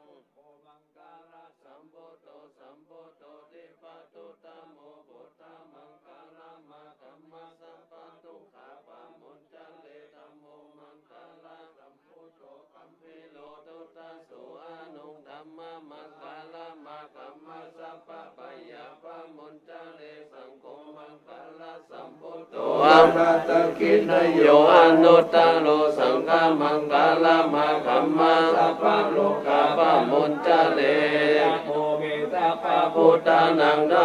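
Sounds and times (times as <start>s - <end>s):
monks chanting in unison: 0.0s - 34.0s.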